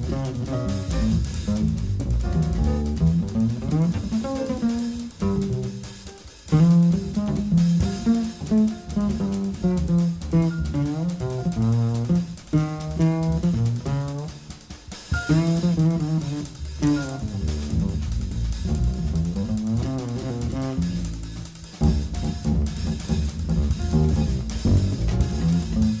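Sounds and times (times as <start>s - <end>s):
drum kit: 0.0s - 26.0s
plucked double bass: 0.0s - 26.0s.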